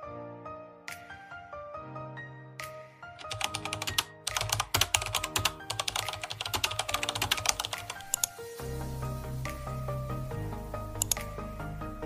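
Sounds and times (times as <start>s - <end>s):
background music: 0.0s - 12.0s
rapid typing on keyboard: 3.2s - 8.4s, 11.0s - 11.3s.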